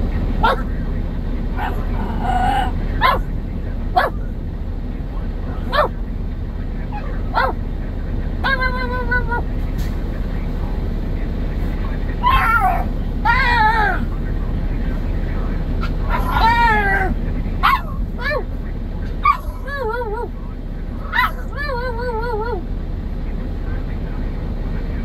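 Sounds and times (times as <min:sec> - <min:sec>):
truck idling rumble: 0:00.0 - 0:25.0
puppy yipping: 0:00.4 - 0:00.7, 0:01.6 - 0:03.3, 0:04.0 - 0:04.2, 0:07.0 - 0:07.6, 0:12.2 - 0:13.9, 0:15.8 - 0:18.4, 0:19.2 - 0:20.3, 0:21.1 - 0:21.8
puppy whimpering and whining: 0:12.2 - 0:14.0.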